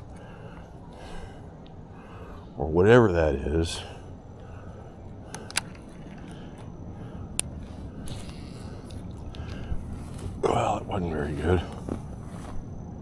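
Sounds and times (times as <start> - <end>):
low outdoor background: 0.0 - 13.0.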